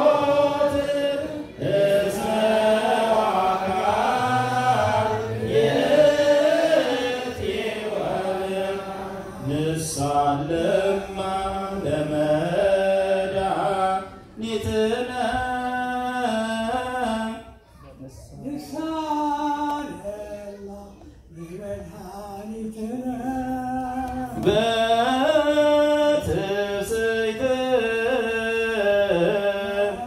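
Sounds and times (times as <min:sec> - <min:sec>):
voices chanting long ornamented notes: 0:00.0 - 0:16.6.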